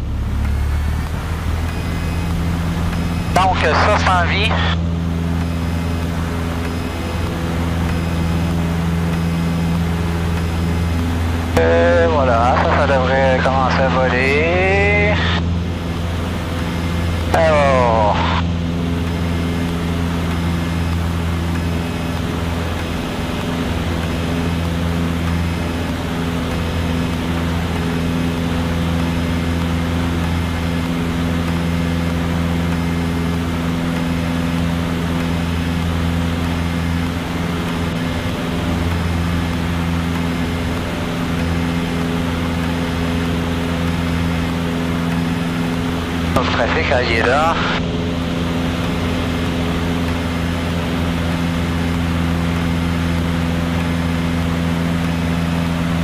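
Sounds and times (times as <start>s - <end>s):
light aircraft engine and propeller drone: 0.0s - 56.0s.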